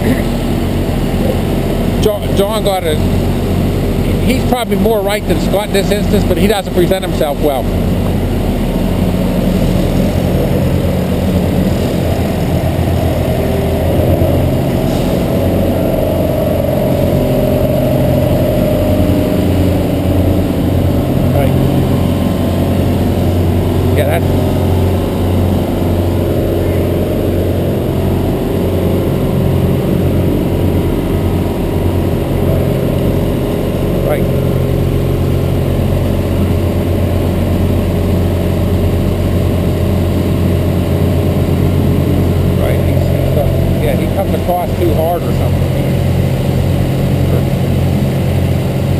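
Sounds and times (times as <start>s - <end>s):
vehicle engine running: 0.0s - 48.9s.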